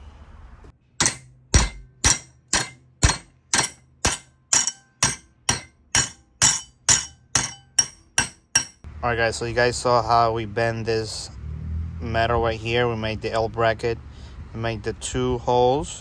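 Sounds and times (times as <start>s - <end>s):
hammer striking metal bar: 1.0s - 8.9s.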